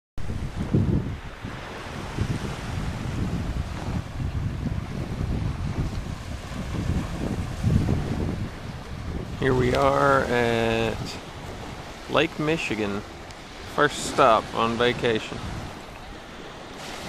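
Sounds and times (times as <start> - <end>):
small waves breaking on shore: 0.2 - 17.0
wind buffeting microphone: 0.2 - 17.0.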